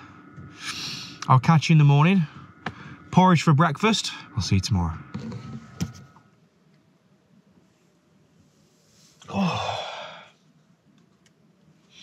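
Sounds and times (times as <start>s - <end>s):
faint steady hum: 0.0s - 12.0s
person sighing: 9.2s - 10.3s.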